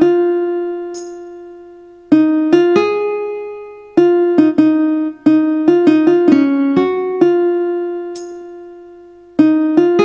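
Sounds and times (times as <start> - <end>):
plucked guitar note ringing: 0.0 - 1.7, 8.1 - 8.7.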